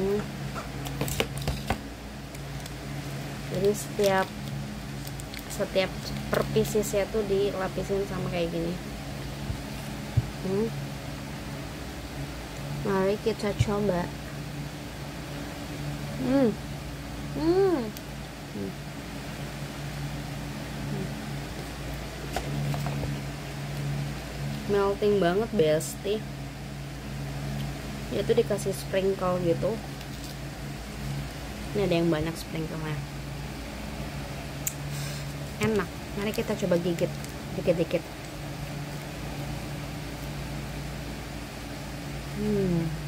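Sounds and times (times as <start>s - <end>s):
person humming while chewing: 17.3s - 18.0s, 20.8s - 21.2s, 42.3s - 43.0s.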